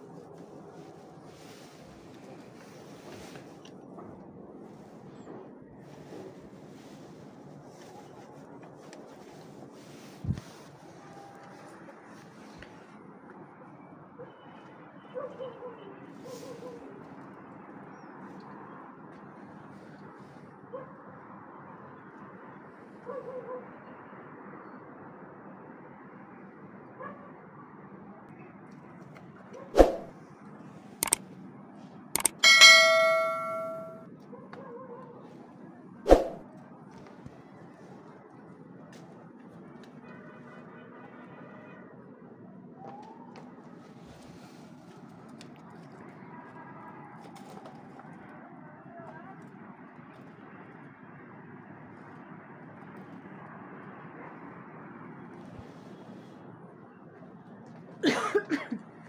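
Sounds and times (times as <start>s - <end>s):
metal clang ringing: 32.2s - 34.0s.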